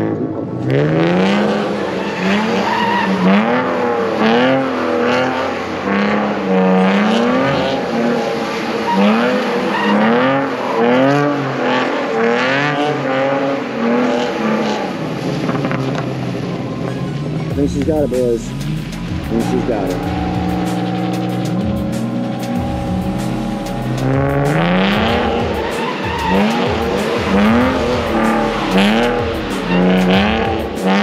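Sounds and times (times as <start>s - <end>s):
car engine revving: 0.0s - 31.0s.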